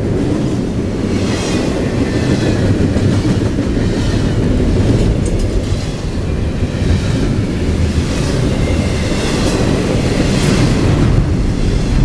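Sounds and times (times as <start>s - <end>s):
train wheels rumbling on rails: 0.0s - 12.0s.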